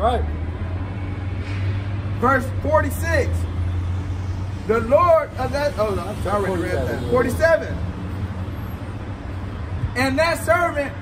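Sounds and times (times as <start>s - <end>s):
low rumble of street traffic: 0.0s - 11.0s.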